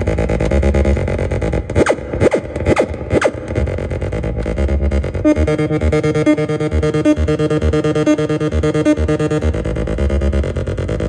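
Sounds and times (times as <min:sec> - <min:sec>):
synthesizer pattern with pulsing bass: 0:00.0 - 0:11.0
falling synth pitch sweeps: 0:00.6 - 0:11.0.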